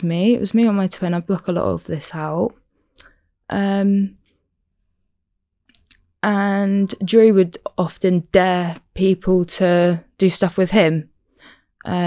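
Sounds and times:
faint mouth clicks: 5.7s - 6.1s.

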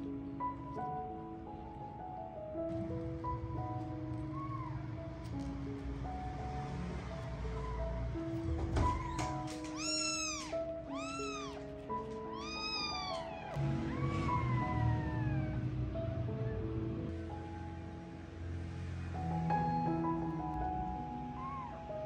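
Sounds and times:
soft background music: 0.0s - 22.0s
kittens mewing: 8.8s - 15.7s.

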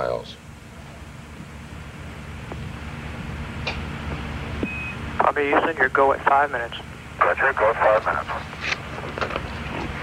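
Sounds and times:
radio channel rumble and hiss: 2.6s - 10.0s
short high beep: 4.6s - 5.0s.

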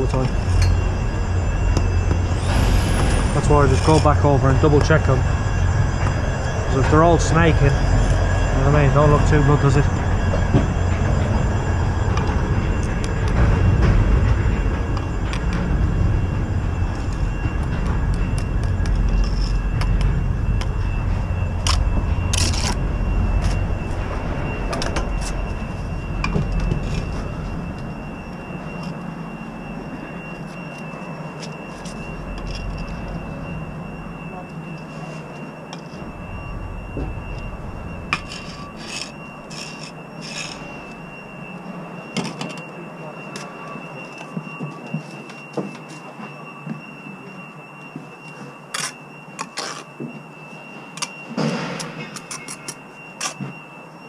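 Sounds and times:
low rumble: 0.0s - 42.2s
thin steady high tone: 0.0s - 54.0s
steel trowel against brick: 38.2s - 40.7s.

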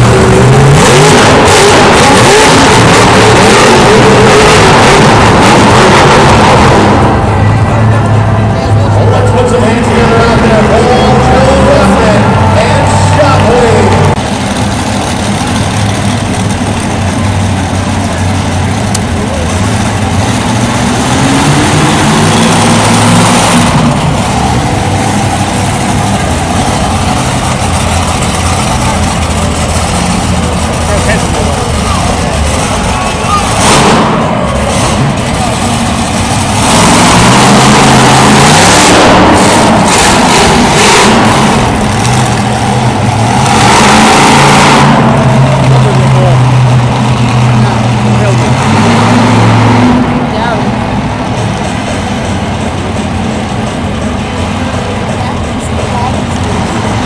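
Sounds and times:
truck engines revving and idling: 0.0s - 57.0s.

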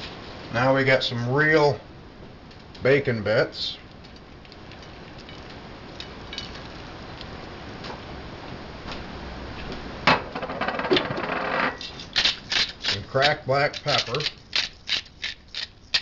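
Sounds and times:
pepper mill grinding: 11.8s - 16.0s.

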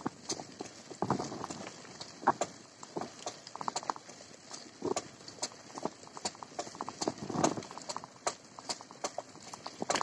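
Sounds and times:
bicycle rattling on rough road: 0.0s - 10.0s.

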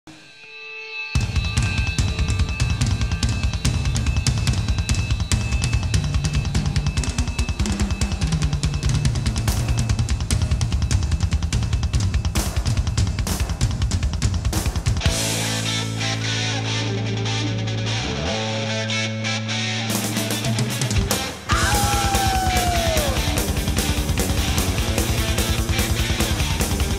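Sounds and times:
fast metal drumming: 1.2s - 15.8s, 20.0s - 26.9s
bass line: 1.2s - 26.9s.

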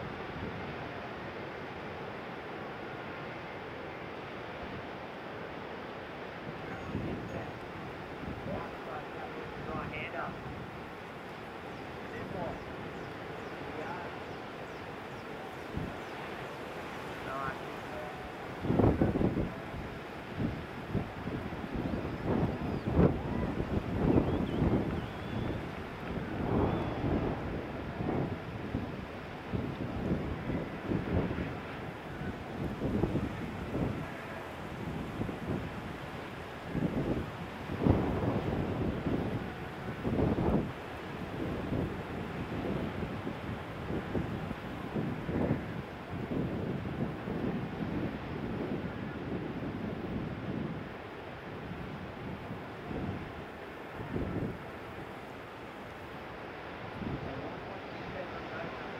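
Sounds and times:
breaking surf: 5.6s - 58.9s
wind buffeting microphone: 18.3s - 55.3s.

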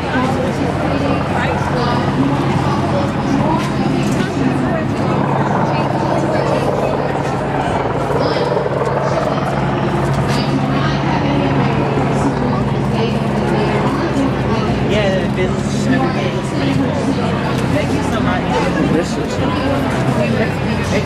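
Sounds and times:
indistinct background voices: 0.0s - 21.0s
low mechanical drone: 0.0s - 21.0s.

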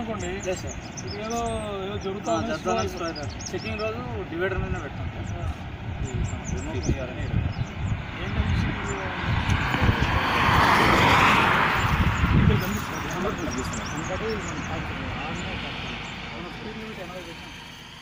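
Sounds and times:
vehicle passing on highway: 0.0s - 18.0s
wind rumbling on microphone: 2.8s - 16.3s.

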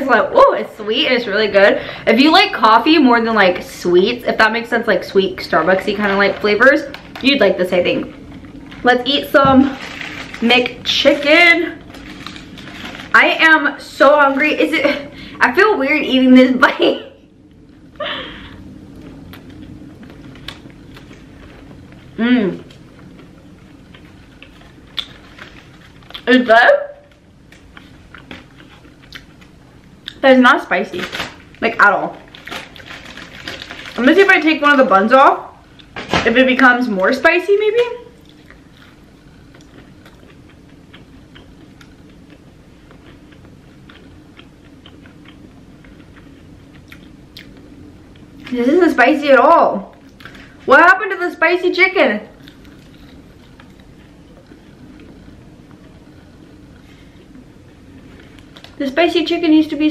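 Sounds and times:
low room hum: 0.0s - 59.9s
quiet chewing: 27.1s - 30.2s, 38.2s - 48.5s, 52.4s - 57.5s.

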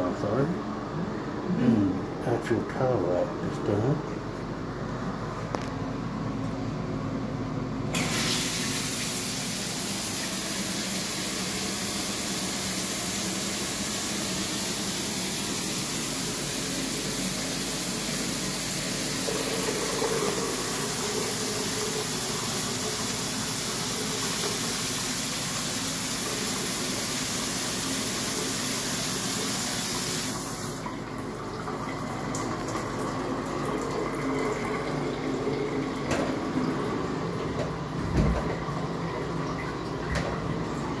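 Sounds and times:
shower spray rushing: 8.0s - 19.7s.

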